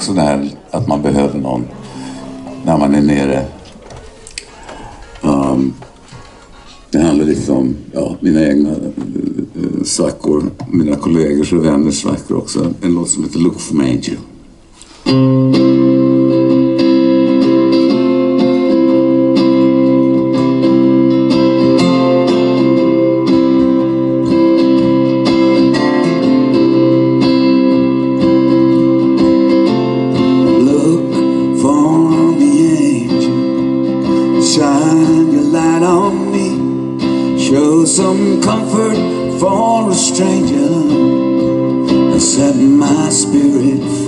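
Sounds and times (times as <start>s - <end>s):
acoustic guitars playing: 0.0s - 13.3s, 14.3s - 44.0s
gliding guitar melody: 0.4s - 3.9s, 15.1s - 44.0s.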